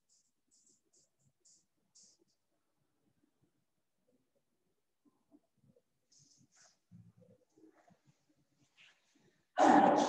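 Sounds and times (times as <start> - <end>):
marker rubbing on whiteboard: 0.0 - 2.6, 6.0 - 9.2.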